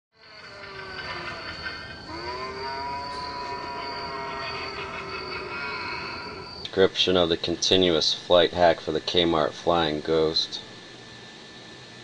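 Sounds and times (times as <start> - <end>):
eerie ghostly moaning tones: 0.2 - 6.8.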